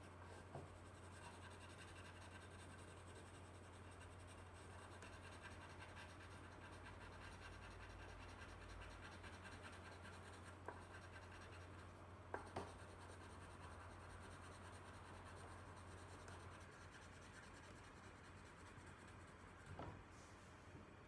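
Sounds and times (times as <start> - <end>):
pencil scratching on paper: 0.2 - 19.7.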